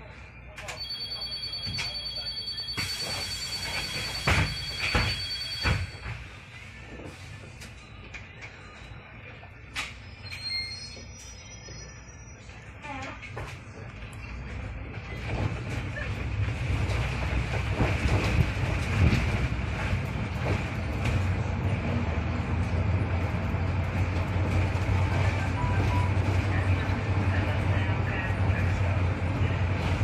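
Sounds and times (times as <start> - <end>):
bus engine low drone: 1.9 - 30.0
knocks in bus cabin: 4.2 - 6.0.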